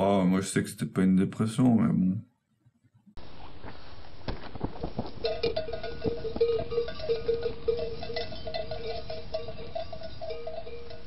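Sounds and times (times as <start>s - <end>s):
sheep bells clanking: 5.1s - 11.0s.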